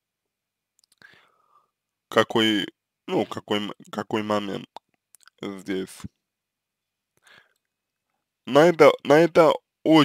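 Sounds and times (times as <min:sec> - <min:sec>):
faint mouth clicks: 0:00.8 - 0:01.1
faint breath: 0:01.0 - 0:01.8, 0:07.2 - 0:07.7.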